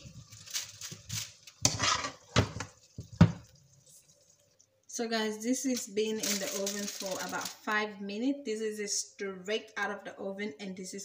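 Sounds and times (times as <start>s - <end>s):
metal spoon scraping frying pan: 1.5s - 2.8s.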